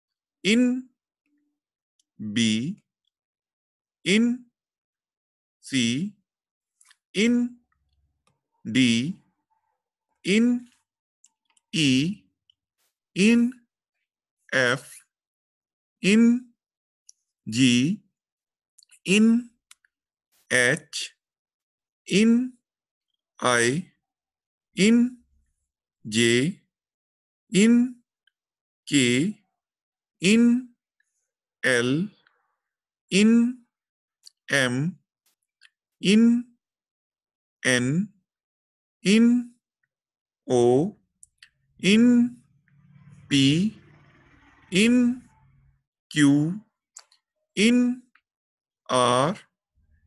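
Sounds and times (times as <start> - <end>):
person calling out a letter: 0.5 - 0.9, 4.1 - 4.4, 7.2 - 7.6, 8.7 - 9.2, 10.3 - 10.8, 11.8 - 12.2, 13.2 - 13.6, 16.0 - 16.4, 19.1 - 19.5, 23.4 - 23.8, 24.8 - 25.2, 27.6 - 28.0, 28.9 - 29.3, 30.2 - 30.7, 33.1 - 33.6, 36.0 - 36.5, 39.1 - 39.5, 41.8 - 42.4, 47.6 - 48.1, 48.9 - 49.4.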